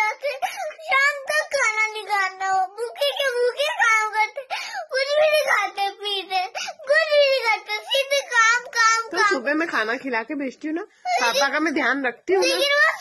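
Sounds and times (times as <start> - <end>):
girl crying as she talks: 0.0 - 9.6, 11.0 - 11.8, 12.4 - 13.0.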